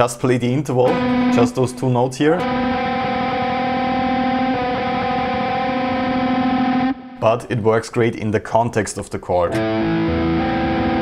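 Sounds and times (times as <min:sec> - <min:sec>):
distorted electric guitar: 0:00.8 - 0:07.3, 0:09.5 - 0:11.0.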